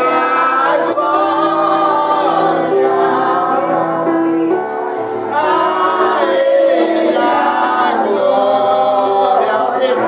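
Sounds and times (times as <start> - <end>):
voices singing worship song: 0.0 - 10.0.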